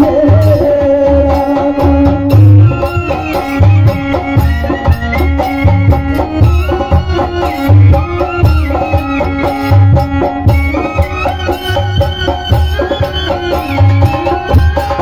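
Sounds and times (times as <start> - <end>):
loud drum beat: 0.0 - 15.0.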